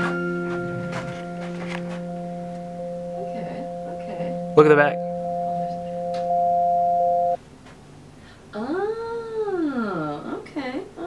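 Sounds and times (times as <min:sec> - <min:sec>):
two-note held tone: 0:00.0 - 0:07.4.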